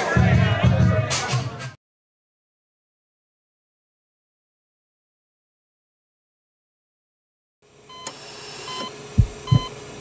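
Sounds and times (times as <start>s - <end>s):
steady hum: 7.8s - 10.0s
deep heartbeat-like thumps: 9.2s - 9.7s
high electronic beeps: 9.5s - 9.7s.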